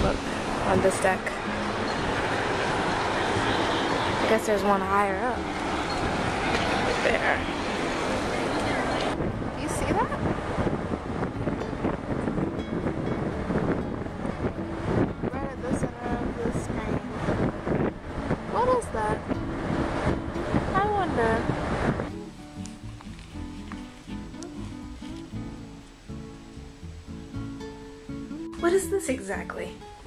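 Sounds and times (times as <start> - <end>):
ship's wake rushing: 0.0 - 22.1
wind on microphone: 0.0 - 23.3
acoustic guitar music: 0.0 - 30.0.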